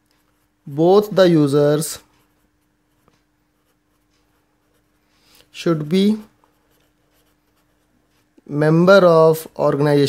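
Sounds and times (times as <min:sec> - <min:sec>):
faint steady hum: 0:00.0 - 0:10.0
pen writing on paper: 0:06.5 - 0:08.2.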